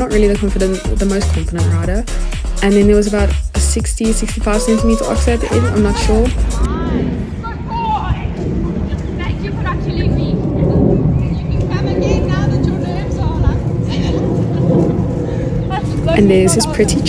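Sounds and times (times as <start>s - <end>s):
wind buffeting microphone: 4.0s - 17.0s.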